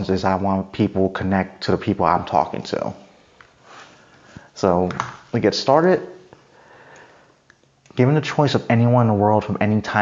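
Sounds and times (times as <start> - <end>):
soft breath or sniff: 3.6 - 4.6.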